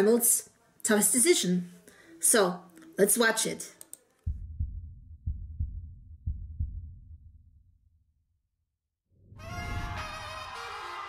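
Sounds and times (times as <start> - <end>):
heartbeat-like double thumps: 4.3 - 7.7.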